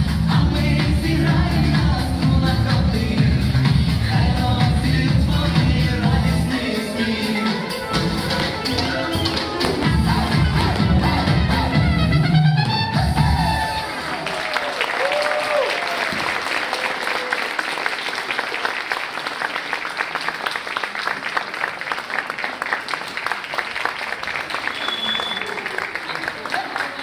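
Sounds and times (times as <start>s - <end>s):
folk dance music: 0.0s - 14.3s
audience applauding: 13.2s - 27.0s.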